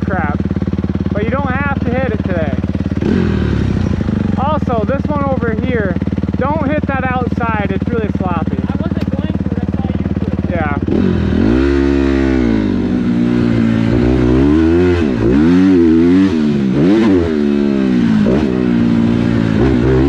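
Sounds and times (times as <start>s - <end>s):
motocross bike engine revving: 0.0s - 20.0s.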